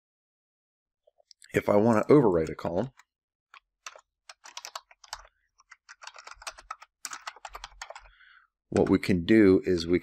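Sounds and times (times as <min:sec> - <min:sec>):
typing on a keyboard: 0:03.6 - 0:08.1, 0:08.7 - 0:09.1.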